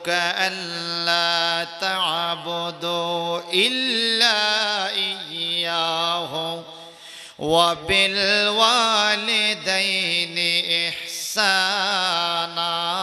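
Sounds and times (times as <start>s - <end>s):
man chanting melodically: 0.0s - 13.0s.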